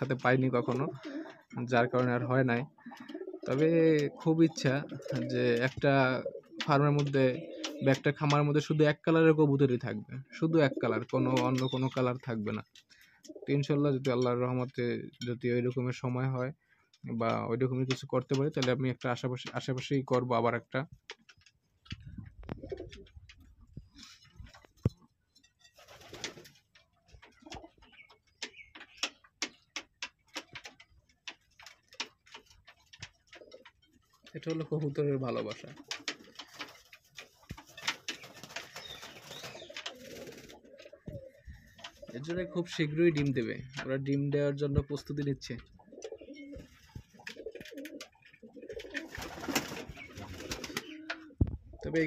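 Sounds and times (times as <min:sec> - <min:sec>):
faint pigeon calls: 0:00.0 - 0:08.4, 0:21.1 - 0:43.8, 0:45.6 - 0:52.0
sharp taps and clicks: 0:04.7 - 0:08.5, 0:10.9 - 0:12.9, 0:13.8 - 0:15.5, 0:16.9 - 0:25.0, 0:27.1 - 0:51.6.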